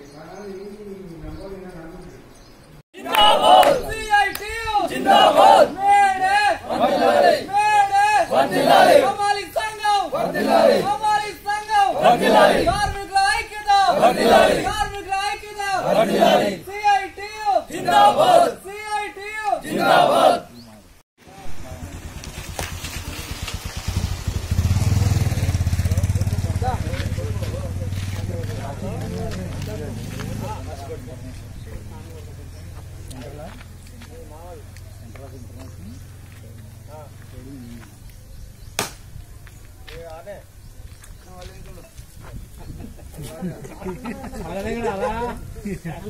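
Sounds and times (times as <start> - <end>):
men chanting slogans in unison: 3.0 - 4.0, 4.8 - 9.3, 10.0 - 11.0, 11.8 - 12.9, 13.7 - 14.9, 15.6 - 16.7, 17.6 - 18.6, 19.5 - 20.5.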